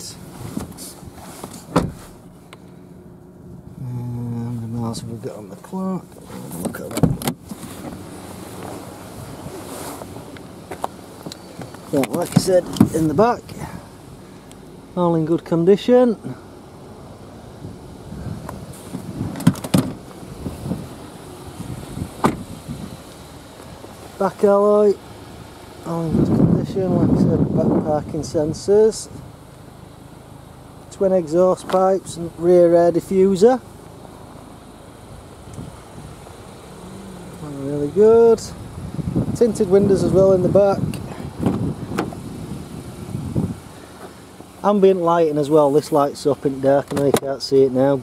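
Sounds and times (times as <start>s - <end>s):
rustling handling noise: 0.2s - 2.5s, 6.1s - 13.2s
car seat and door clicks: 1.4s - 2.2s, 6.6s - 8.0s, 9.5s - 13.1s, 18.4s - 20.2s, 22.2s - 22.5s, 40.9s - 42.2s, 46.8s - 47.3s
car door latch click: 1.7s - 2.0s, 18.9s - 20.0s, 22.2s - 22.5s, 40.9s - 42.2s.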